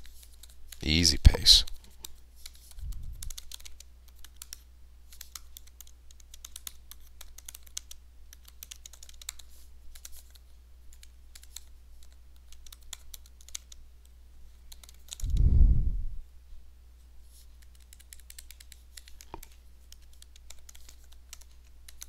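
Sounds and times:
steady low hum: 0:00.8 - 0:03.6, 0:13.9 - 0:17.3.

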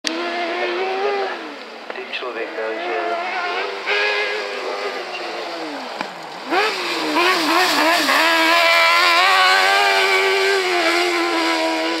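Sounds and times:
buggy engine revving hard: 0:00.0 - 0:01.6, 0:02.5 - 0:12.0.

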